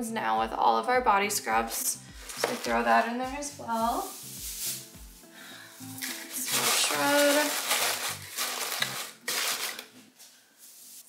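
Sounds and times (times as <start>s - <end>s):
paper packing fill rustling: 2.3s - 3.0s, 4.0s - 11.0s.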